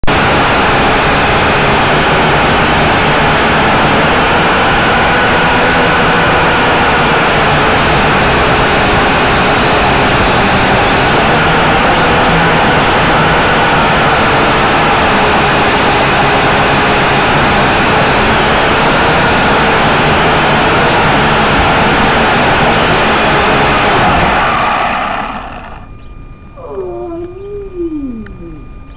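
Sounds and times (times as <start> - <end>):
drone propellers whirring: 0.0 - 28.9.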